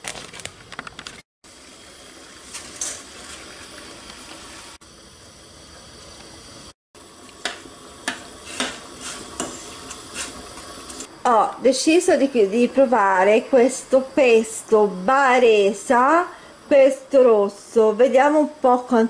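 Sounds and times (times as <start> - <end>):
water boiling in a pot: 1.4 - 19.0.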